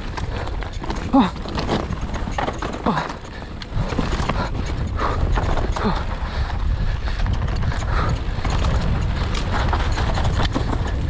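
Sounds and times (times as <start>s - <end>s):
bike rattling and knocking: 0.0s - 11.0s
bike tyres rumbling on dirt: 0.0s - 11.0s
rider grunting: 0.0s - 11.0s.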